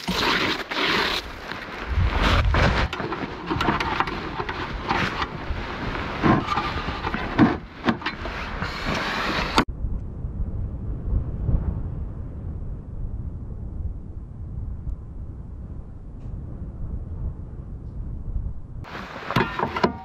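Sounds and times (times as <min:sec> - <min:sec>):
scraping and crunching in snow: 0:00.0 - 0:09.6
wind on microphone: 0:01.2 - 0:20.0
dull steady rumble: 0:01.9 - 0:20.0.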